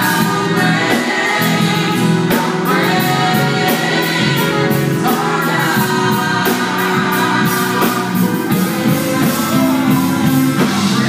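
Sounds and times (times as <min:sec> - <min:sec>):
backing choir: 0:00.0 - 0:11.0
band playing: 0:00.0 - 0:11.0
lead singer: 0:00.0 - 0:11.0
steady drum beat: 0:00.0 - 0:11.0.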